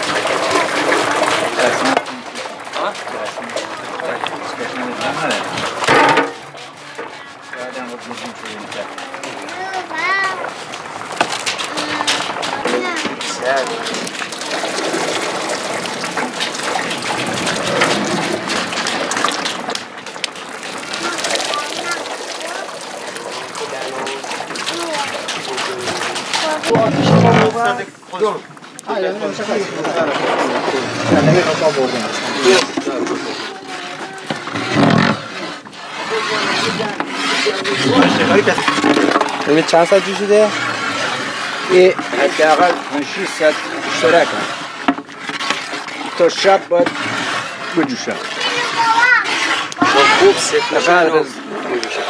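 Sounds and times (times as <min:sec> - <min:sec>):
voices talking: 0:00.0 - 0:44.7, 0:45.8 - 0:52.0
steady background noise: 0:00.0 - 0:52.0.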